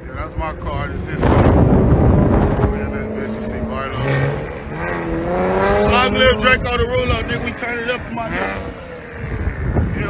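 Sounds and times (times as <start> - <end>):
car engines running: 0.0 - 10.0
engine revving up: 0.1 - 10.0
loud rushing noise: 0.8 - 10.0.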